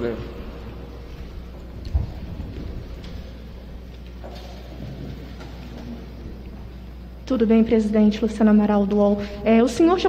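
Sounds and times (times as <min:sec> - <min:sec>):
room noise rumble and hiss: 0:00.0 - 0:10.0.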